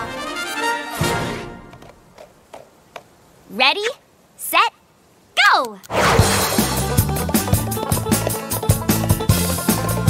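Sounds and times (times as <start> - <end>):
upbeat music with quick beat: 6.6 - 10.0.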